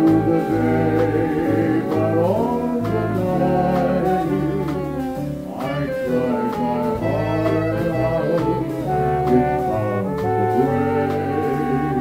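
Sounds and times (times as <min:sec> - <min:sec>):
jazz band horns holding chords: 0:00.0 - 0:12.0
piano bass and drums: 0:00.0 - 0:12.0.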